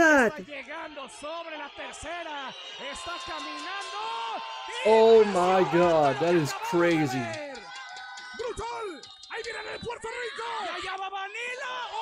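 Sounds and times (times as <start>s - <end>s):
excited commentary: 0.0s - 7.5s
background music: 4.9s - 7.4s.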